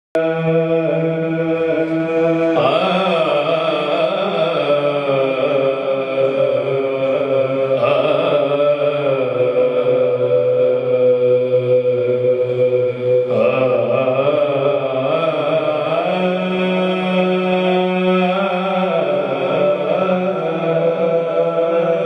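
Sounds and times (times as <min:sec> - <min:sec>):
man singing unaccompanied: 0:00.2 - 0:22.0.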